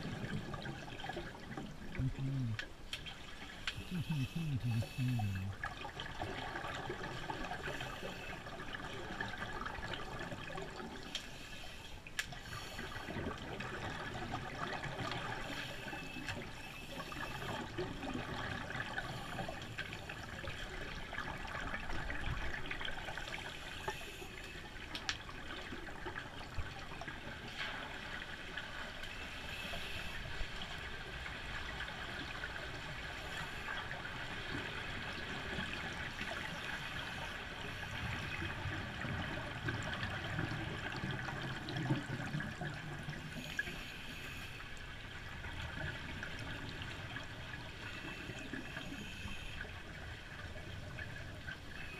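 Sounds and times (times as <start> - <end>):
underwater regulator bubbling: 3.6 - 5.6.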